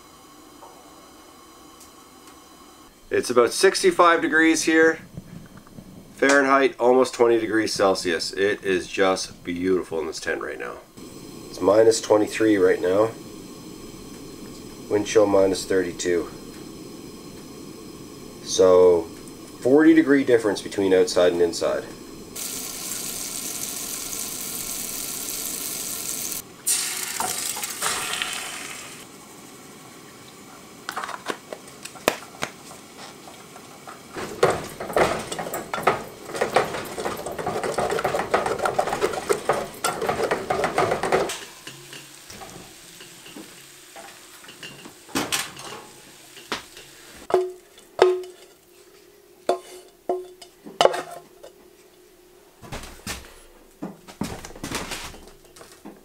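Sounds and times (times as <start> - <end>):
steady hiss: 0.0 - 50.6
eggs sizzling in a pot: 7.2 - 50.6
utensils clinking on a plate: 34.4 - 48.6
wooden spoon scraping a pot: 47.7 - 51.2.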